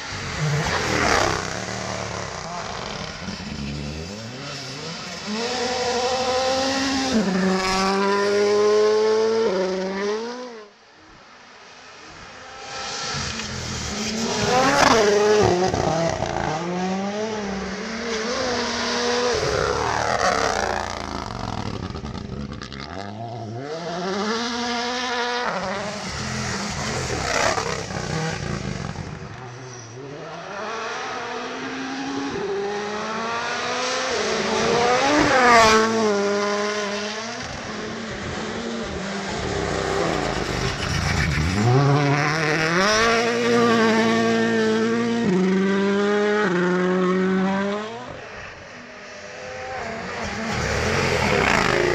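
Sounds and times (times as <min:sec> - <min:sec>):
rally car engine revving: 0:00.0 - 0:10.7, 0:12.2 - 0:48.3, 0:49.4 - 0:51.9.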